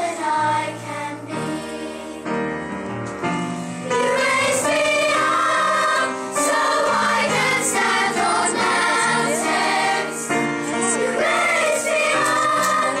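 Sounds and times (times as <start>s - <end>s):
children's choir singing: 0.0s - 2.7s, 3.8s - 13.0s.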